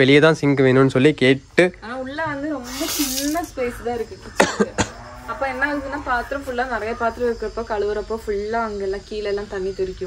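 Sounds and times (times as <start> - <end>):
short sharp coughs: 4.4 - 4.9.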